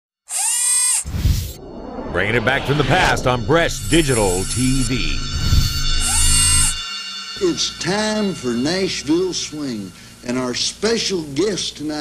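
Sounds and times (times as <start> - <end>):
high drill-like whirring: 0.3 - 1.6, 3.9 - 7.3
low boom: 1.5 - 6.8.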